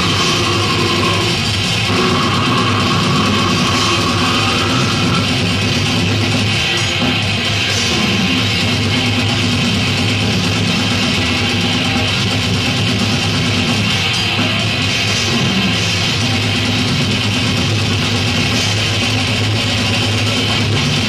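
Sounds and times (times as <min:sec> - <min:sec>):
death metal band playing live: 0:00.0 - 0:21.0.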